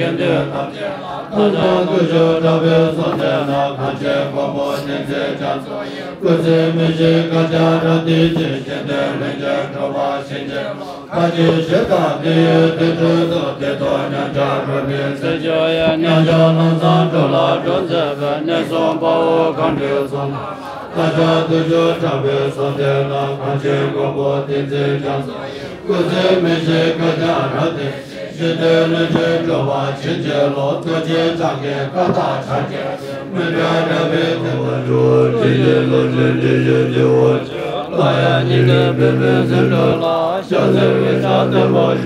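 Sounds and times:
low-pitched prayer chanting: 0.0 - 42.0.

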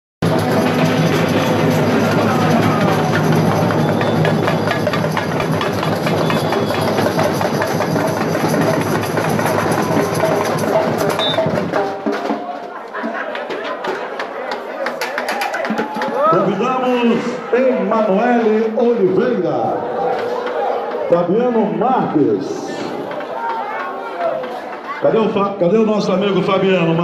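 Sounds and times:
samba drum section playing: 0.2 - 21.8
crowd voices: 0.2 - 27.0.

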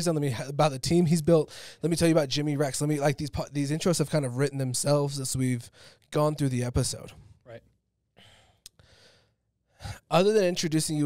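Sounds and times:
man breathing out: 8.2 - 9.4.

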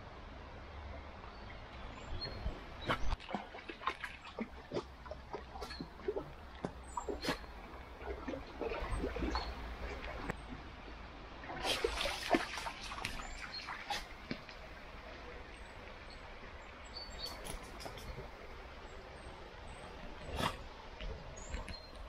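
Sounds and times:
water trickling: 11.3 - 20.3.

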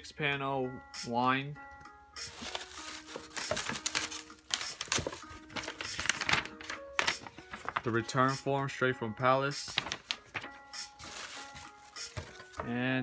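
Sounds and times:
soft background music: 0.0 - 13.0
paper and packaging rustling: 2.3 - 8.4, 9.5 - 12.8.

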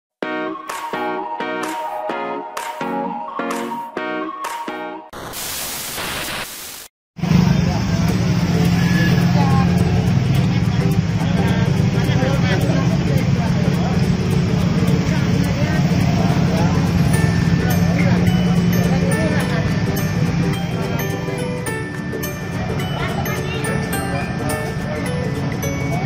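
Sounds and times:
glitch static: 5.2 - 6.9
traffic hum: 7.2 - 26.0
babble of voices: 7.4 - 26.0.

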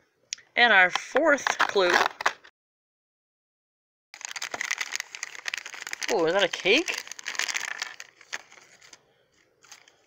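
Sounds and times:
foil wrapper crinkling: 4.2 - 9.0.

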